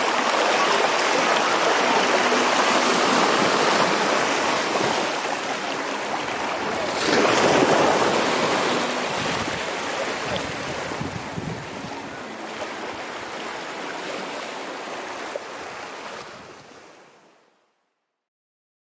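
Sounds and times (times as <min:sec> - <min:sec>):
small waves washing ashore: 0:00.0 - 0:17.5.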